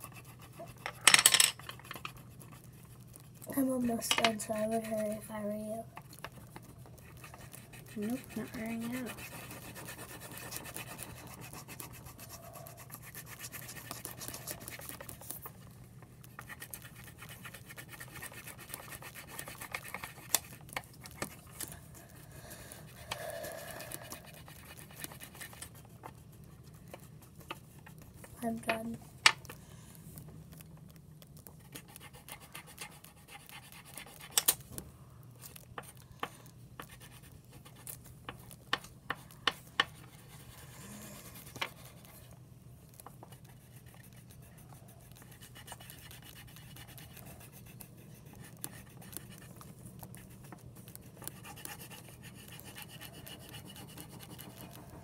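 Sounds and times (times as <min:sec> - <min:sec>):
pencils scratching on paper: 0:00.0 - 0:29.0, 0:30.4 - 0:34.6, 0:35.4 - 0:55.0
pencils tapping on table: 0:00.8 - 0:02.2, 0:03.8 - 0:05.1, 0:28.6 - 0:29.4.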